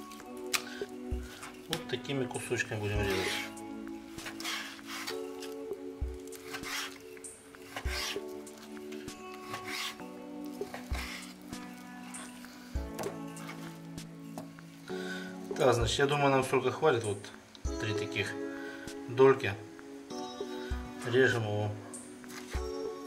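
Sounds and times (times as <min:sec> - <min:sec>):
knife slicing meat on board: 0:04.2 - 0:05.6, 0:06.4 - 0:12.3.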